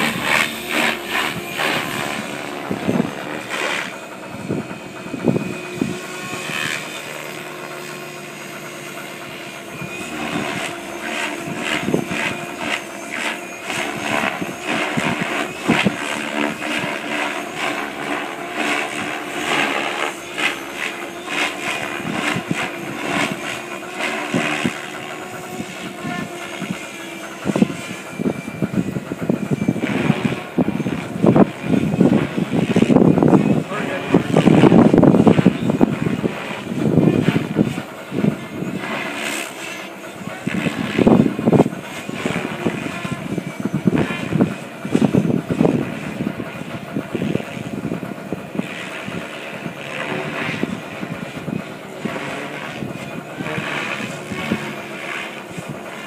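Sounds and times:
model helicopter rotor whine: 0.0s - 56.0s.

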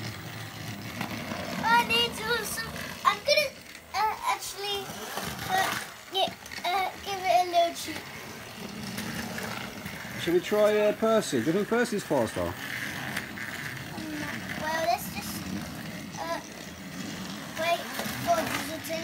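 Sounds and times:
toy train engines whirring: 0.0s - 19.0s
child calling out: 1.6s - 4.9s.

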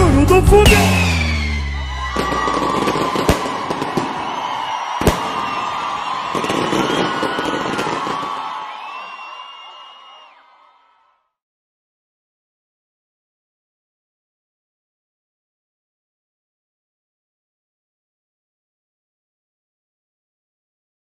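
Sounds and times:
firework whistles: 0.6s - 10.4s
fireworks crackling and banging: 0.7s - 9.3s.

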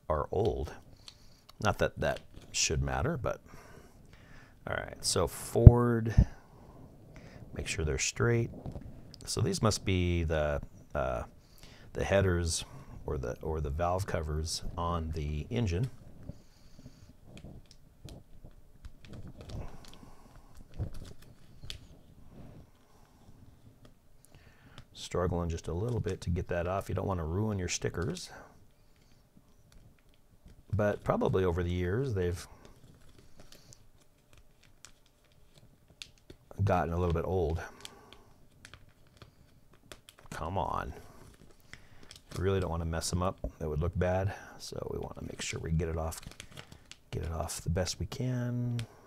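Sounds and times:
paper rustling: 13.6s - 22.9s, 28.8s - 43.5s, 45.0s - 48.0s.

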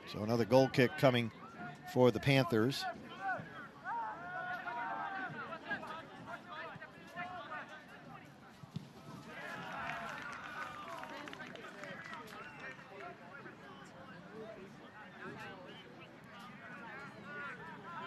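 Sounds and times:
distant shouts and chatter: 0.0s - 18.0s.

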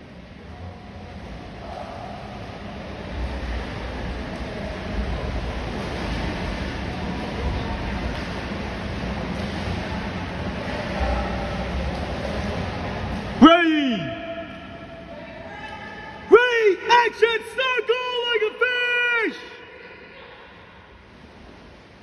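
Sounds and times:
water noise in indoor pool: 0.0s - 22.0s.

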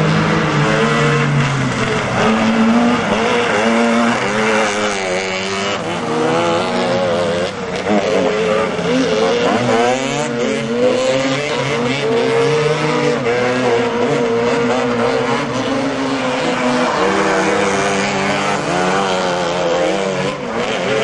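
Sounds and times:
three-wheeler engines revving: 0.0s - 21.0s.

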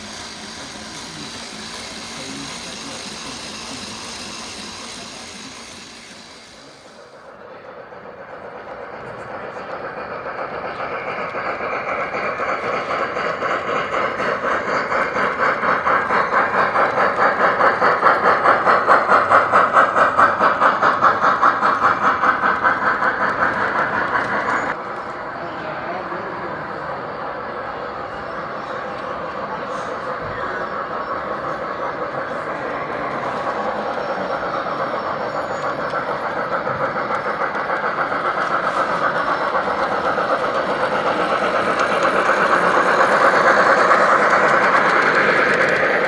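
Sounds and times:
model train rhythmic beat: 0.0s - 24.8s, 26.6s - 46.0s.

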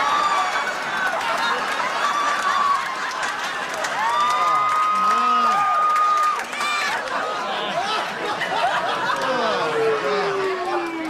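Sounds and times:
audience cheering and applauding: 0.0s - 11.0s.

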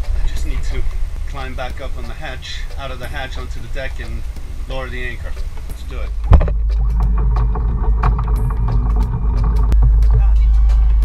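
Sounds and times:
boat engine low rumble: 0.0s - 11.0s
bumps and clatter: 5.2s - 11.0s.

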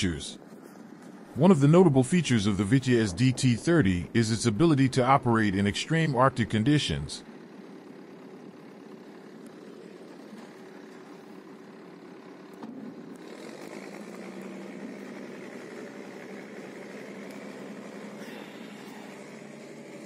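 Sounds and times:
engine running: 0.0s - 20.0s
steady low hum: 0.0s - 20.0s.

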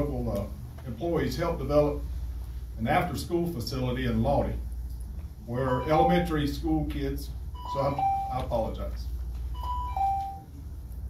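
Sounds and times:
low room hum: 0.0s - 11.0s
two-note electronic chime: 5.8s - 6.4s, 7.6s - 8.4s, 9.6s - 10.5s.

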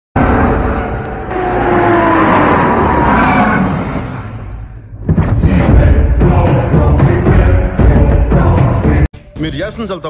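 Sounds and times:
car engine and road noise: 0.1s - 5.6s.

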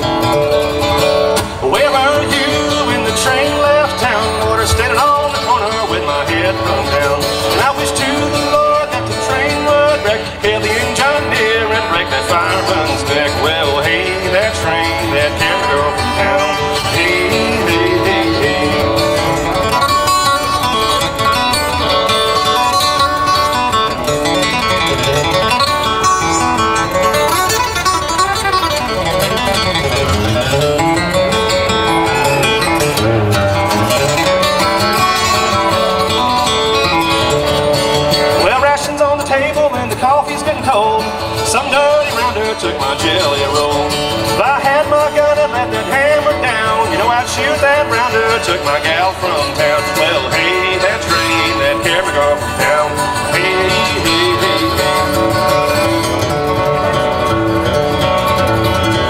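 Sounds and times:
acoustic guitar bluegrass playing: 0.0s - 59.0s.

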